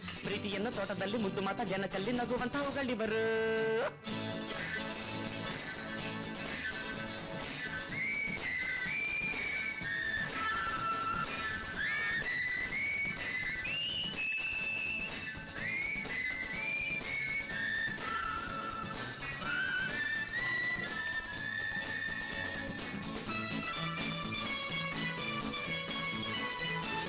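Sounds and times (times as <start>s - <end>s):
instrumental backing music: 0.0s - 27.0s
whistled melody: 4.1s - 27.0s.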